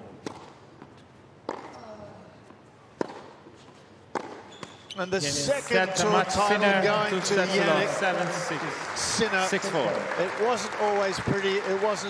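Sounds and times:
tennis ball struck by rackets: 0.2s - 1.7s, 3.0s - 3.5s, 4.1s - 4.6s.

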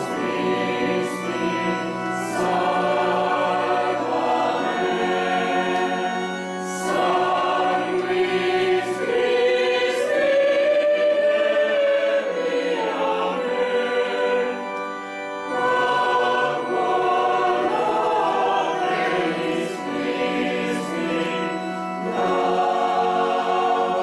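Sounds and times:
choir singing sacred music: 0.0s - 24.0s.

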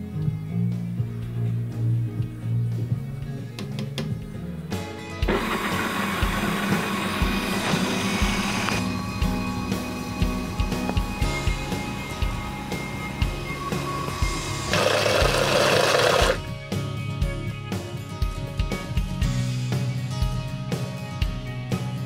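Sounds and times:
countertop blender running: 5.2s - 16.4s.

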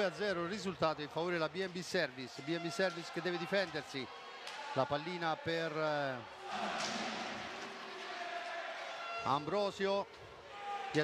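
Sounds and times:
hubbub of spectators: 0.0s - 11.0s.

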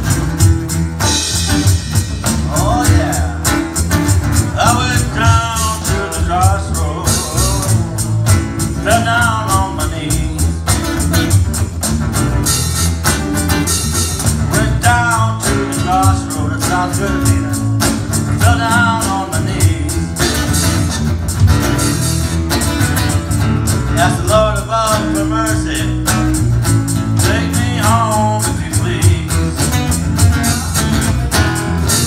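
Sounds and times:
electronic drum beat: 0.0s - 24.5s
guitar strumming: 0.0s - 32.0s
man singing: 2.3s - 3.8s, 4.4s - 11.0s, 14.4s - 17.7s, 18.3s - 20.4s, 23.9s - 26.4s, 27.1s - 31.3s.

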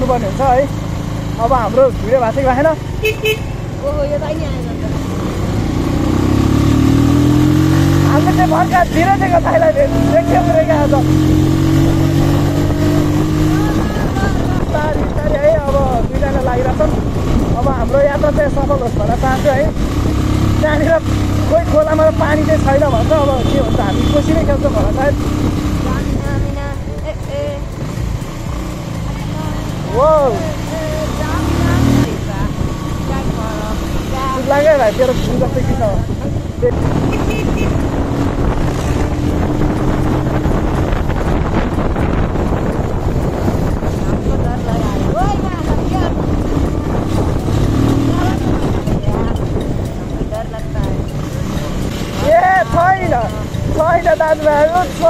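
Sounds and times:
motorcycle engine accelerating: 0.0s - 55.0s
voices talking: 0.0s - 55.0s.

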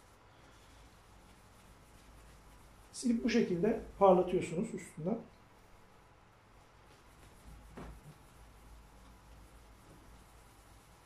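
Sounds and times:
cloth rubbing on wood: 0.0s - 4.8s, 5.6s - 11.0s.

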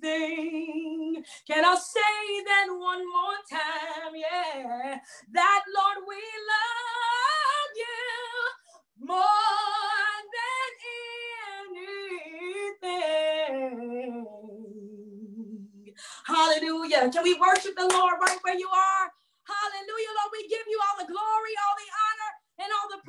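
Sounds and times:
woman singing gospel solo: 0.0s - 14.4s, 16.2s - 23.0s.

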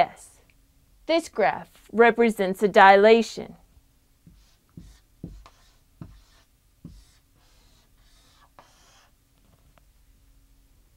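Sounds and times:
marker writing on whiteboard: 4.2s - 9.2s.

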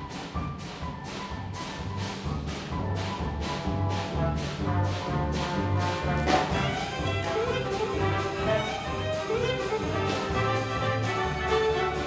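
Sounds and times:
brass-led jazz orchestra: 0.0s - 12.0s.

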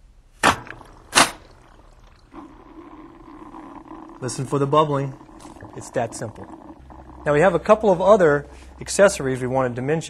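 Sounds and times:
steady bubbling inside unit: 0.4s - 10.0s.

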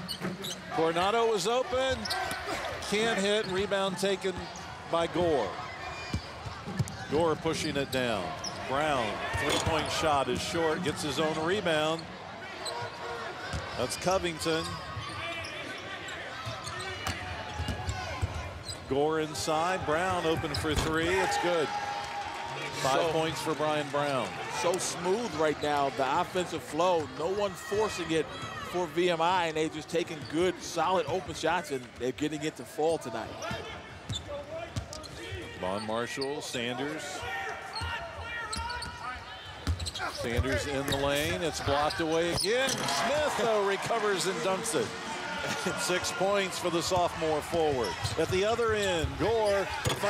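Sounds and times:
arena crowd chatter: 0.0s - 50.0s.

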